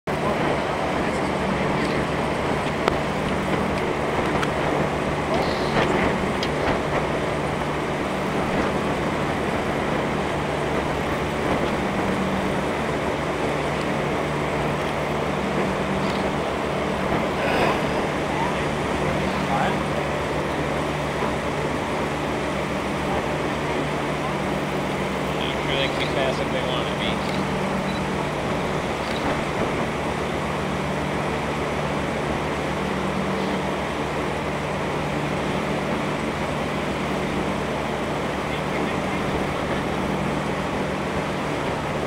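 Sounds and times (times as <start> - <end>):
constant wash of noise: 0.0 - 42.0
steady engine hum: 0.0 - 42.0.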